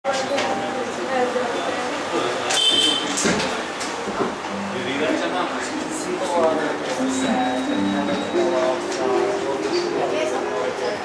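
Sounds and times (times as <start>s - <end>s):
people talking in background: 0.0s - 11.0s
brief high-pitched tone: 4.5s - 10.6s.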